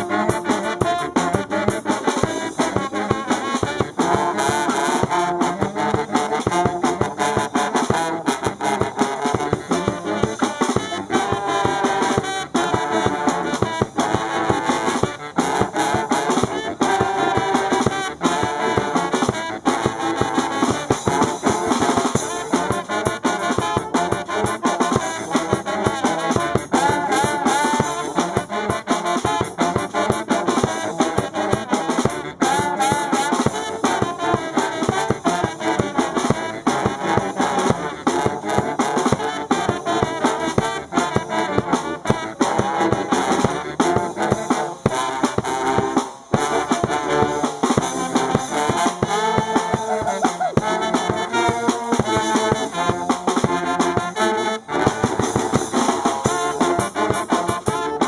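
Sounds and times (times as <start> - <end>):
drum kit: 0.0 - 58.0
saxophones: 0.0 - 58.0
trombone: 0.0 - 58.0
trumpets: 0.0 - 58.0
sousaphone: 48.8 - 51.9.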